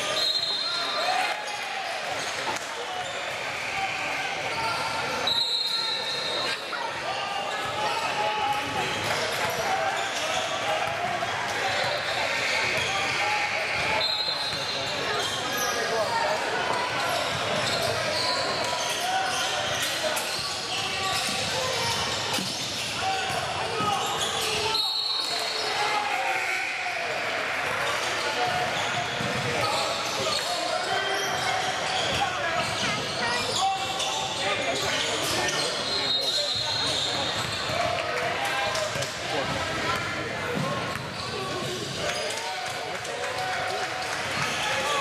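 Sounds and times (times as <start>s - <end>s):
indistinct chatter in a hall: 0.0s - 45.0s.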